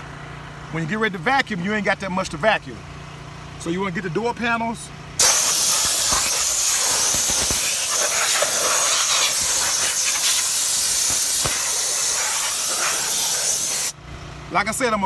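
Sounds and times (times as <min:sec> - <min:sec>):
compressed air hissing: 0:05.2 - 0:14.0.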